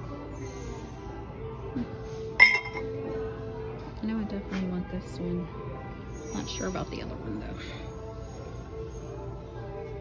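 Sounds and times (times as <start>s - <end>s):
background music: 0.0s - 10.0s
ceramic mugs clinking: 2.4s - 3.0s.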